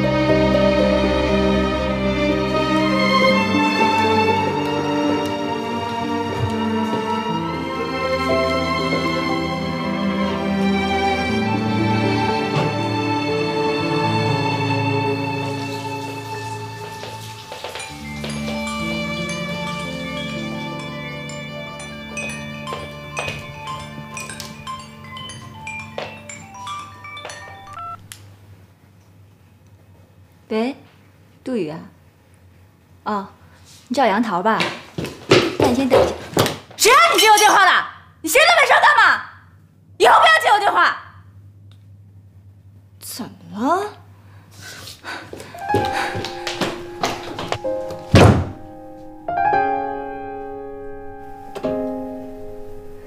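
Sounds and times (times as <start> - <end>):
drama score music: 0.0 - 28.0, 45.6 - 53.0
sustained piano-like chords: 0.0 - 28.1, 45.4 - 53.0
marimba-like phone ringtone: 17.9 - 28.0
heavy thud: 46.7 - 48.7.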